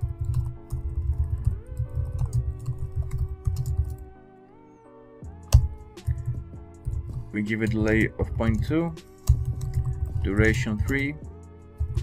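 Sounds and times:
keyboard typing: 0.0s - 4.2s, 5.3s - 12.0s
background music with sustained chords: 0.0s - 12.0s.

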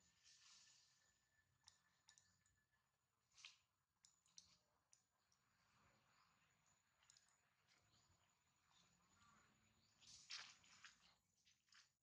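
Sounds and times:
faint clicks and ticks: 0.0s - 11.9s.

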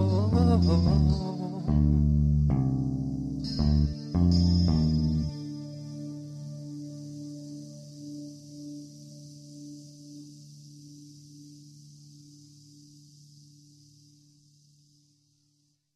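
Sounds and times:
electric guitar chord ringing: 0.0s - 10.9s
faint high hiss: 0.0s - 15.9s.

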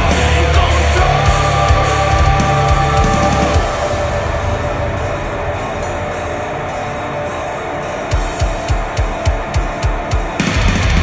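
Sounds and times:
cymbal strikes: 1.2s - 11.0s.

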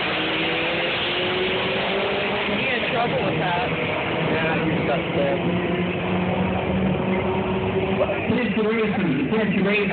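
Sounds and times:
car engine running steadily: 0.0s - 9.9s
drag strip din: 0.0s - 9.9s.

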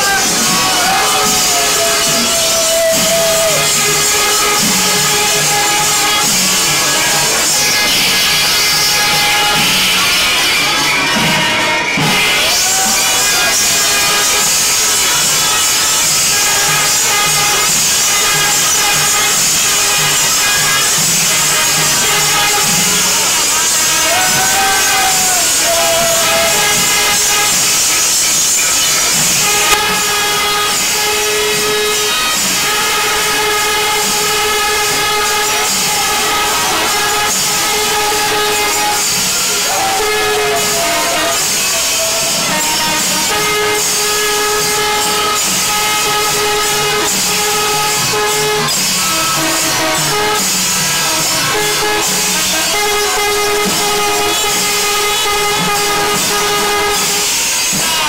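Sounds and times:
brass horns rise-and-fall calls: 0.0s - 58.0s
double-reed pipes long notes: 0.0s - 58.0s.

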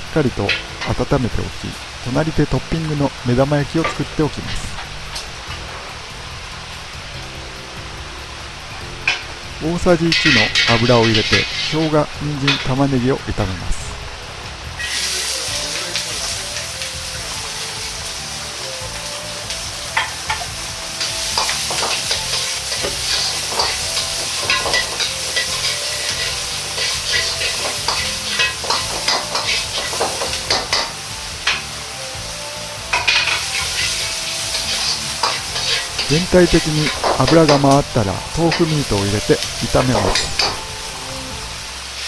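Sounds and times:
vegetables sizzling in hot oil: 0.0s - 42.0s
metal ladle scraping a wok: 10.1s - 12.7s, 14.8s - 15.3s, 20.0s - 31.8s, 32.9s - 37.7s.

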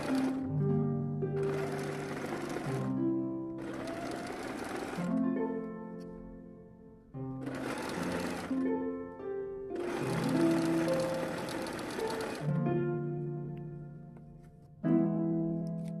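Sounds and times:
sewing machine stitching: 0.0s - 0.5s, 1.4s - 3.0s, 3.6s - 5.3s, 7.4s - 8.6s, 9.8s - 12.6s
plucked background music: 0.0s - 16.0s.

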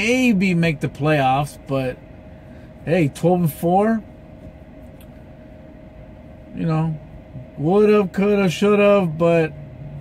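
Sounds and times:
faint constant whine: 0.0s - 10.0s
truck cab low hum: 0.0s - 10.0s.

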